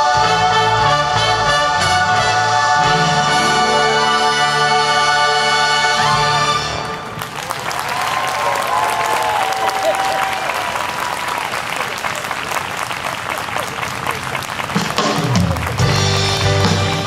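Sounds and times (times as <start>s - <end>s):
band music: 0.0s - 7.4s, 13.1s - 17.0s
audience applauding: 6.8s - 17.0s
voices cheering: 7.2s - 15.8s.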